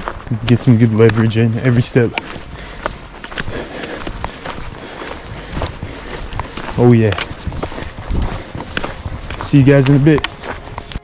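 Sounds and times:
footsteps on rocky trail: 0:00.0 - 0:11.0
trekking poles striking ground: 0:00.0 - 0:11.0.

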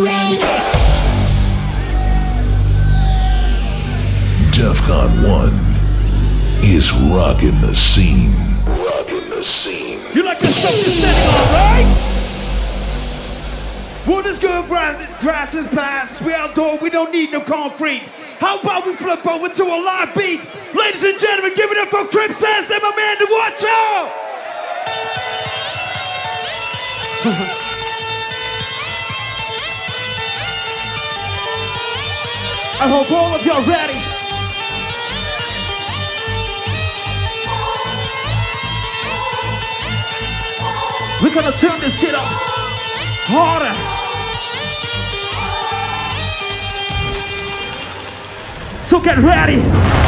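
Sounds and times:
man shouting over music: 0:00.0 - 0:12.3, 0:13.9 - 0:26.6, 0:31.4 - 0:34.8, 0:36.6 - 0:46.6
distorted synth lead: 0:10.3 - 0:16.6
man laughing: 0:27.2 - 0:27.7.

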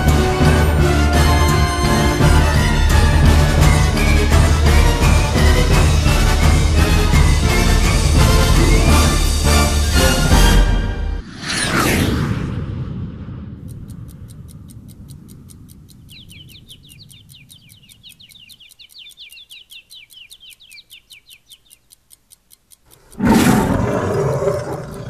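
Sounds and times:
steady ticking: 0:00.0 - 0:11.2, 0:11.9 - 0:25.0
quick chirps: 0:13.7 - 0:25.0.

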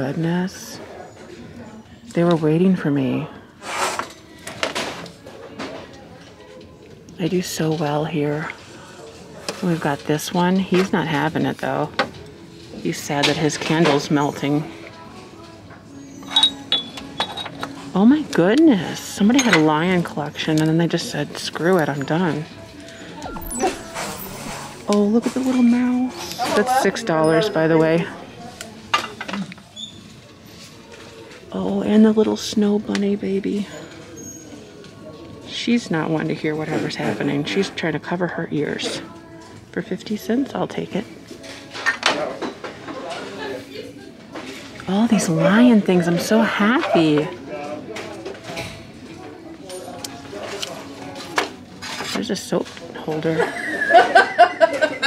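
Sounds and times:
store room tone: 0:21.6 - 0:29.5.

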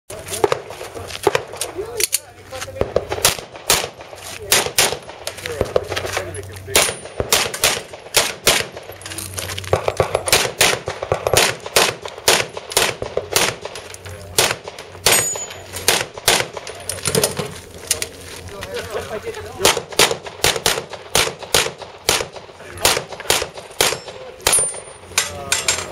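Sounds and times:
handgun shots: 0:02.8 - 0:06.0, 0:06.7 - 0:08.9, 0:09.7 - 0:13.8, 0:14.4 - 0:16.7, 0:19.6 - 0:24.8.

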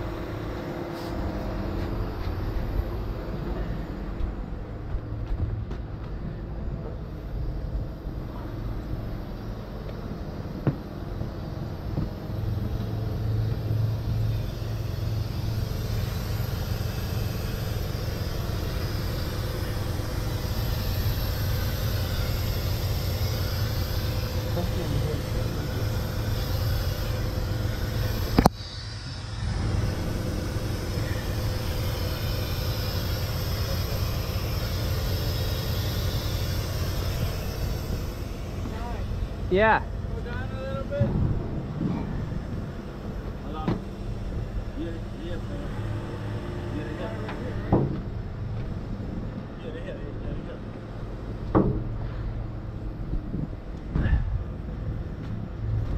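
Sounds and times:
diesel truck engine rumbling: 0:00.0 - 0:55.9
hydraulics working: 0:00.0 - 0:55.9.

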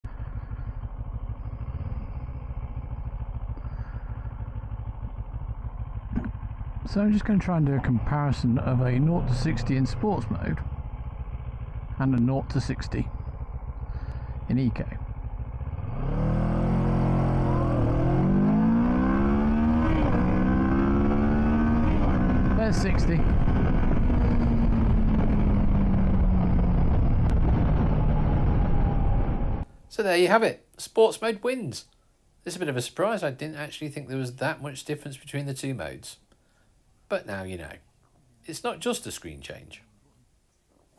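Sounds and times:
motorcycle engine idling: 0:00.0 - 0:29.1.

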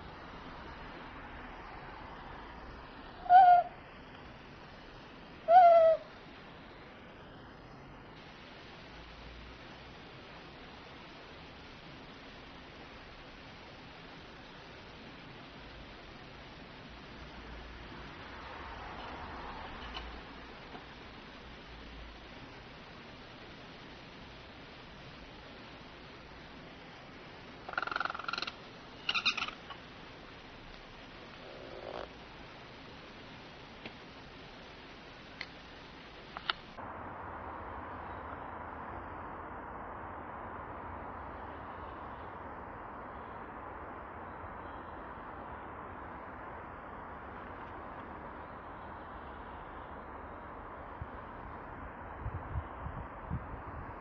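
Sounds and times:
owl hoots: 0:03.2 - 0:03.9, 0:05.4 - 0:06.2, 0:27.6 - 0:29.9, 0:31.4 - 0:32.2.

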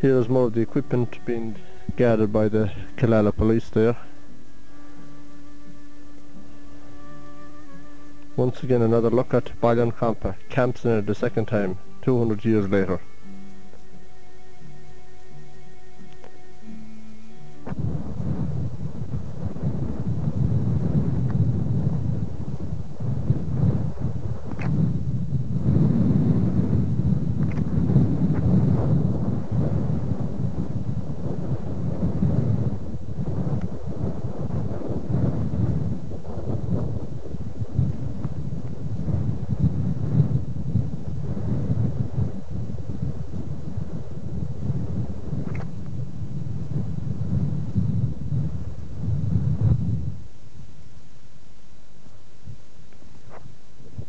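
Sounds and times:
wind buffeting microphone: 0:00.0 - 0:14.0, 0:14.6 - 0:50.7, 0:53.2 - 0:54.0.

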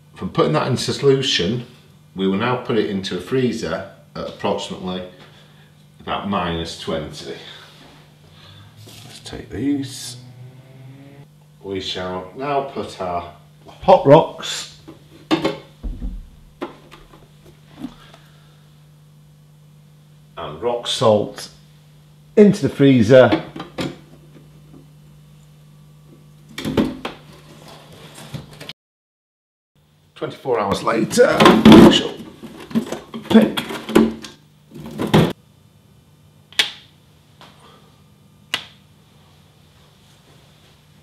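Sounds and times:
steady low hum: 0:00.0 - 0:28.1
plastic freezer parts scraping: 0:34.7 - 0:35.3.

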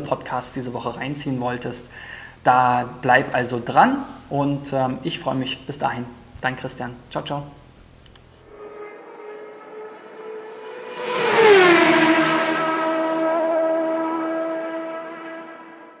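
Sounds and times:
engine-like synthetic tone: 0:08.5 - 0:16.0.

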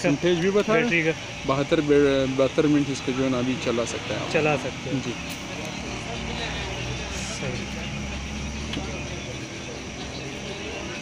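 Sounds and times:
faint chatter: 0:00.0 - 0:11.0.

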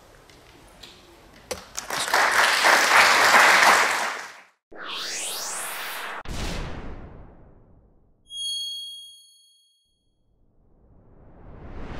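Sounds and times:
whoosh: 0:04.7 - 0:08.0, 0:10.4 - 0:11.9
bell-like ding: 0:08.3 - 0:10.0.

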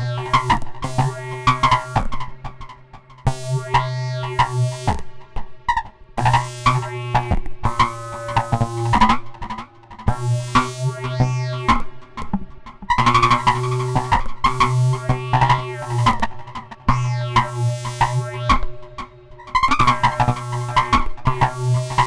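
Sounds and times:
clicky pitched synth patterns: 0:00.0 - 0:02.1, 0:10.1 - 0:12.3, 0:13.0 - 0:22.0
low synthesizer drone: 0:00.0 - 0:22.0.

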